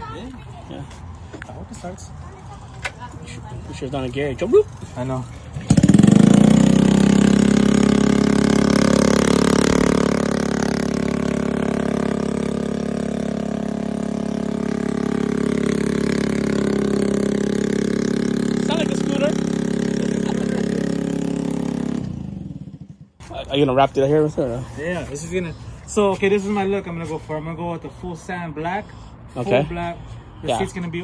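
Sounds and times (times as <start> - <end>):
scooter engine starting and idling: 3.8 - 23.2.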